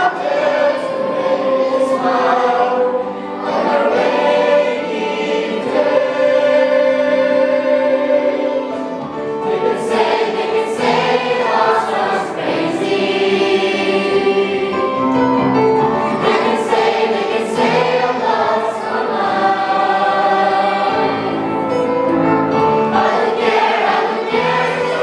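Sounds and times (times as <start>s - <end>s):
mixed choir singing: 0.0s - 25.0s.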